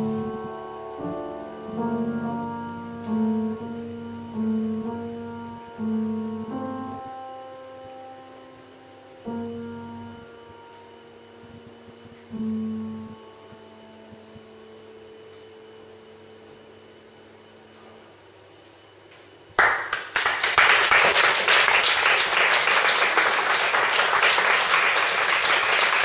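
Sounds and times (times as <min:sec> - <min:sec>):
grand piano chords: 0:00.0 - 0:18.5, 0:20.2 - 0:26.0.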